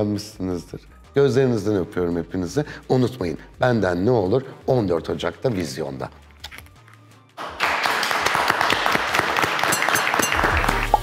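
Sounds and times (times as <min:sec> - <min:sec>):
applause: 0:07.4 - 0:11.0
music with low bass note: 0:10.4 - 0:11.0.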